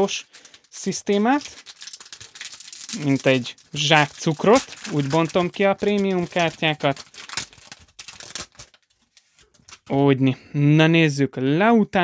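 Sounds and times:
wrapper crinkling and tearing: 0.0 - 9.9
cards rustling: 0.1 - 10.0.

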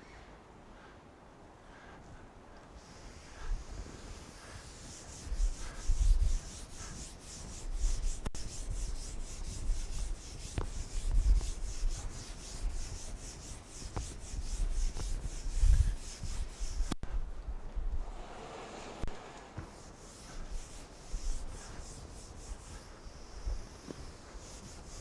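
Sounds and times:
eraser rubbing on chalkboard: 2.8 - 17.0, 19.0 - 25.0.

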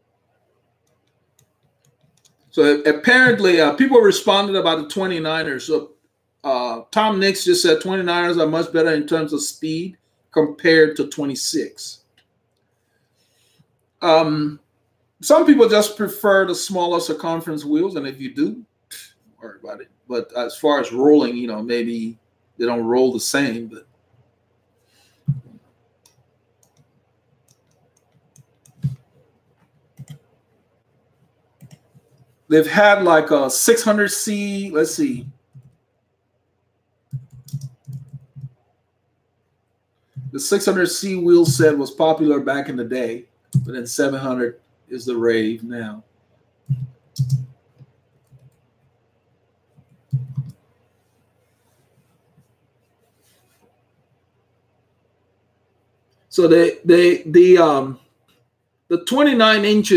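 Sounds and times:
light clicks and taps: 0.8 - 2.5, 25.2 - 30.3, 37.1 - 38.6, 49.7 - 50.6.

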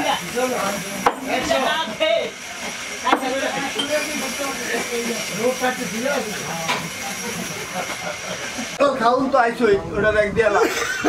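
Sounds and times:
steady hissing noise: 0.0 - 11.0.

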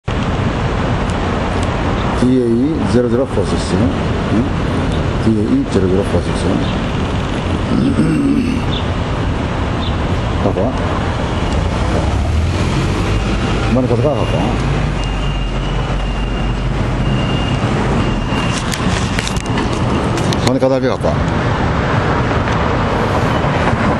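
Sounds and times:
traffic rumble: 0.0 - 23.9
people's voices: 2.2 - 6.8, 7.6 - 8.8, 13.5 - 15.3.

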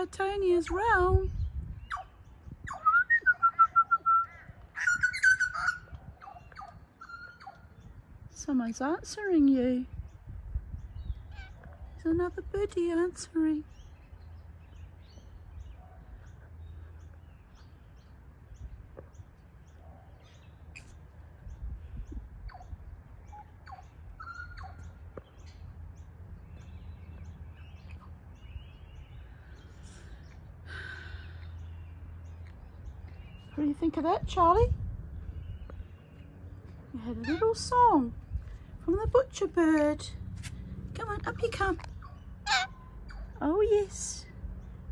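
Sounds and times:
bird singing whistled notes: 1.3 - 7.6
bird whistling fluted notes: 2.7 - 5.8.

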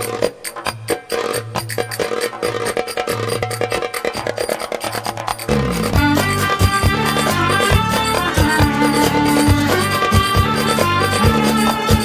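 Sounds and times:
pulsing bass note: 5.5 - 9.8
band playing: 5.5 - 12.0
frame drum beating: 5.5 - 12.0.

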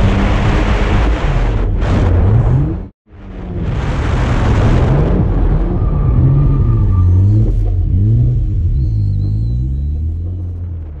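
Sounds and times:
car engine revving: 5.1 - 11.0.

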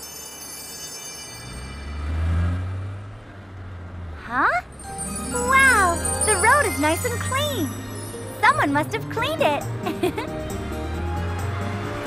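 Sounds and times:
sparkling chime: 0.0 - 2.3, 4.8 - 9.6
cartoon car engine hum: 1.4 - 12.0.

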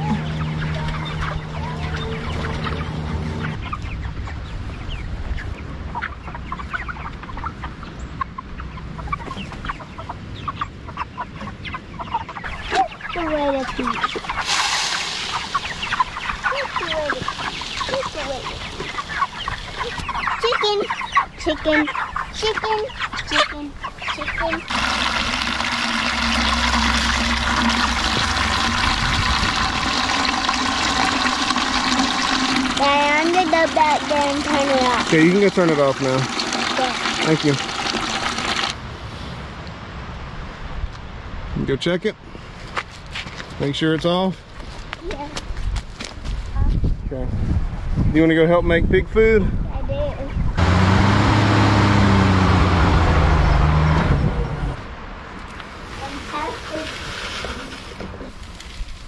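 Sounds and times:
chickens clucking: 0.0 - 38.8
running water rushing: 24.3 - 38.8.

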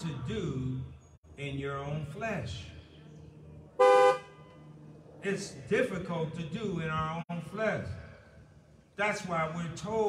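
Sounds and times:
car horn toot: 3.8 - 4.4.

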